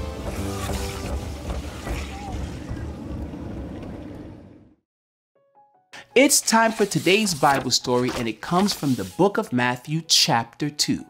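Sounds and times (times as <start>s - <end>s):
roller coaster rumbling on track: 1.2s - 4.6s.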